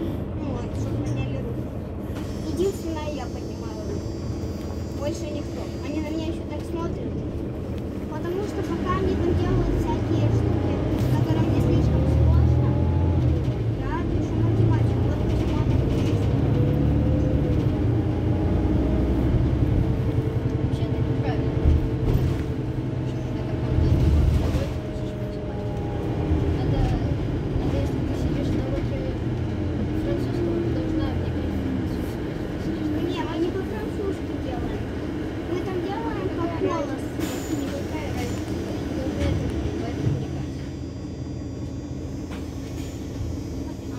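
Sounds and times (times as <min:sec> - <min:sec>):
people's voices: 0:00.0 - 0:42.4
bus engine idling: 0:00.0 - 0:43.9.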